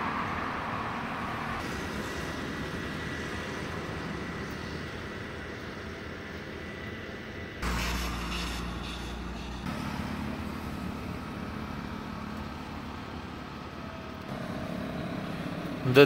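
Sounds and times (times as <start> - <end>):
traffic on wet road: 0.0 - 16.0
vehicle humming: 0.0 - 16.0.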